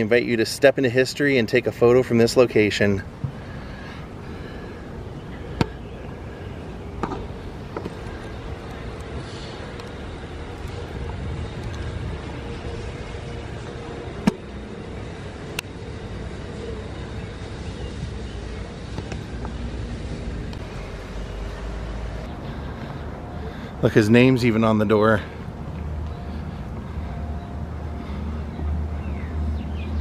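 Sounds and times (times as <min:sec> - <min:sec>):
low outdoor background rumble: 0:00.0 - 0:30.0.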